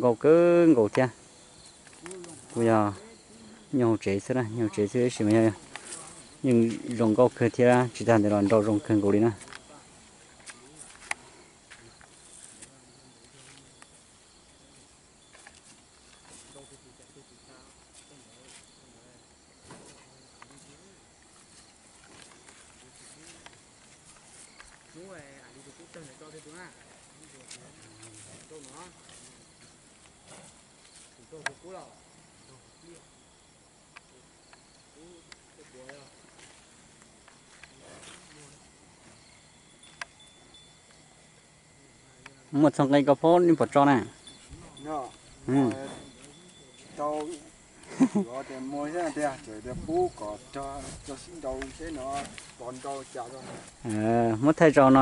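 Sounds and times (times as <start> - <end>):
insects chirping: 0.0 - 55.0.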